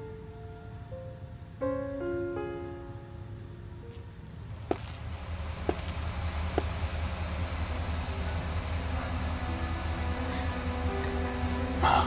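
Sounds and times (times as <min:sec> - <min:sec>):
soft music with held notes: 0:00.0 - 0:04.5, 0:08.5 - 0:12.0
train rumbling at a platform: 0:00.0 - 0:12.0.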